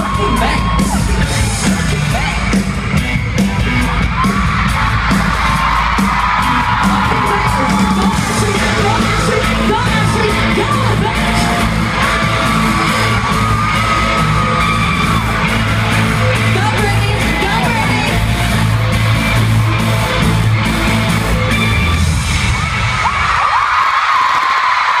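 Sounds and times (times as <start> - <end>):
live pop music: 0.0 - 24.9
audience yelling and whooping: 0.0 - 25.0
person singing: 6.8 - 11.7.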